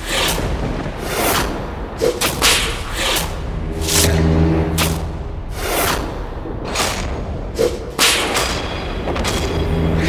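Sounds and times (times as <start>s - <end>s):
low drone: 2.6s - 6.6s.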